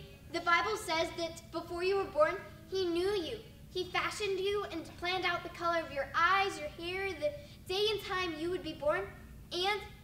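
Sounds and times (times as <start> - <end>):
young voice talking sing-song: 0.0 - 10.0.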